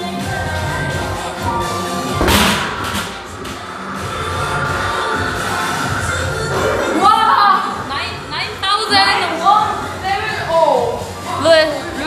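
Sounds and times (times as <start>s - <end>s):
background music: 0.0s - 12.0s
punching bag thump: 2.2s - 3.6s.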